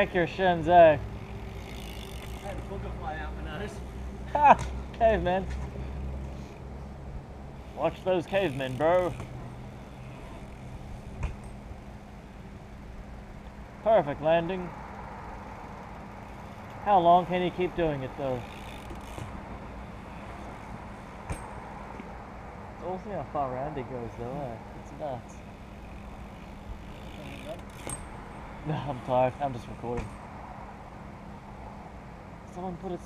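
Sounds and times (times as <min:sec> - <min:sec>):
bike wheels rumbling on concrete: 0:00.0 - 0:33.0
bike knocking on concrete: 0:10.3 - 0:11.6, 0:21.2 - 0:22.1, 0:29.8 - 0:30.3.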